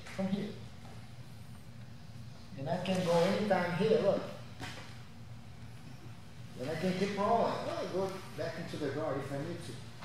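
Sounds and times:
man speaking: 6.6s - 9.8s.

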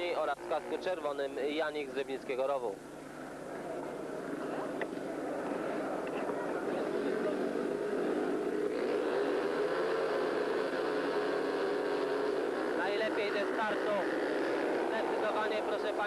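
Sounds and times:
motorcycle engines revving: 0.0s - 16.0s.

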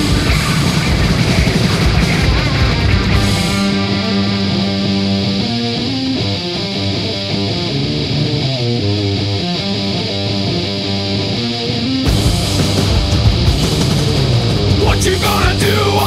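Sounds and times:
guitar melodic line: 0.0s - 16.0s
instrumental rock music: 0.0s - 16.0s.

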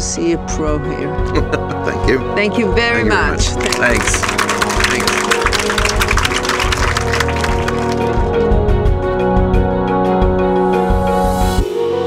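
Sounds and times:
audience applauding: 3.0s - 8.8s
closing music: 3.0s - 9.2s.

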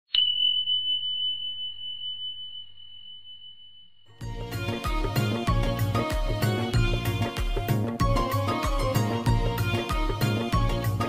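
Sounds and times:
high chime ringing: 0.1s - 4.3s.

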